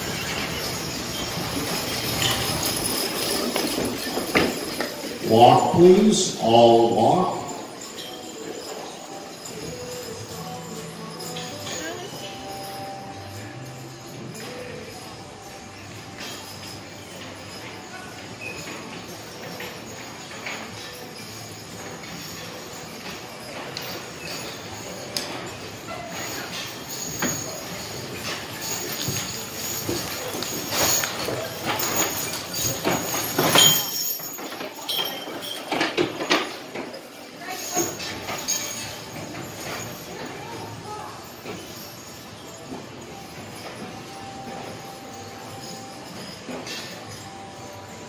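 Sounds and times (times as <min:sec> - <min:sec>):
harness jingling and clinking: 0:00.0 - 0:48.0
people talking: 0:05.2 - 0:07.7, 0:11.5 - 0:12.6.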